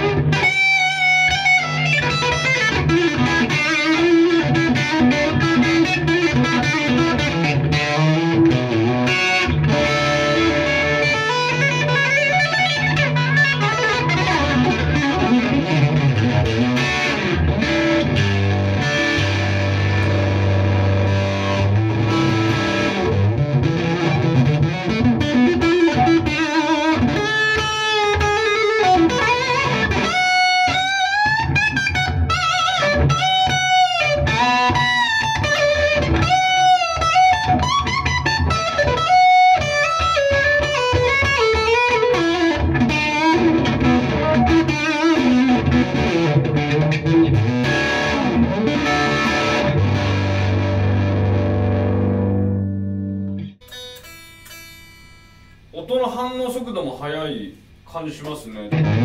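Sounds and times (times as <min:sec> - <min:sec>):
electric guitar playing: 0:00.0 - 0:55.8, 0:58.5 - 0:59.0.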